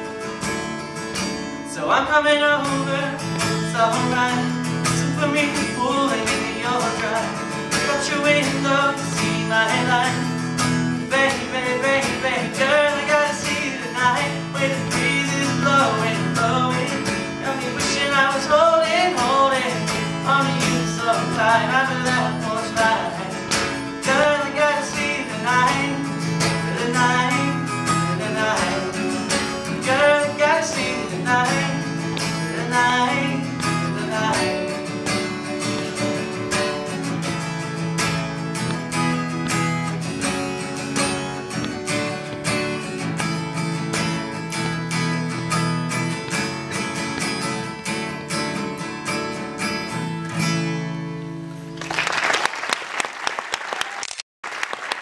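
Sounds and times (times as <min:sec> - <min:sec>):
acoustic guitar strumming: 0:00.0 - 0:51.8
person singing: 0:11.0 - 0:34.8
audience applause: 0:51.8 - 0:55.0.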